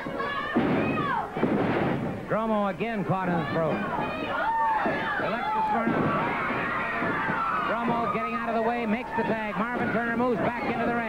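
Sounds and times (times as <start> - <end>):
heavy thuds on ring canvas: 0.5 - 2.2, 4.8 - 8.1
crowd shouting: 3.3 - 11.0.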